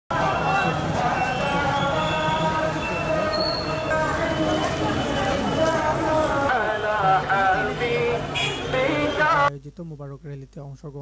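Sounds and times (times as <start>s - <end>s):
many motorcycles running: 0.1s - 9.5s
voices: 0.1s - 11.0s.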